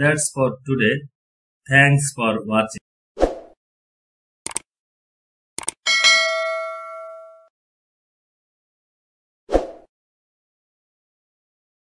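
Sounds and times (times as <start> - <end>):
bell ding: 5.9 - 7.5.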